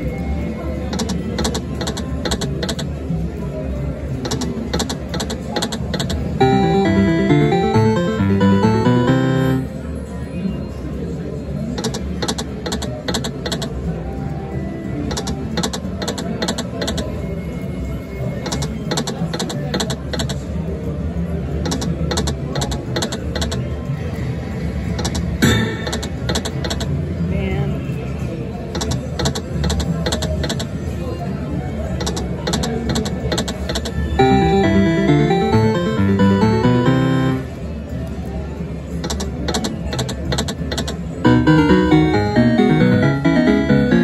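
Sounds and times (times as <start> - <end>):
casino floor din and chatter: 0.0 - 44.0
slot machine reels clicking: 6.0 - 9.6, 34.2 - 37.4, 40.8 - 44.0.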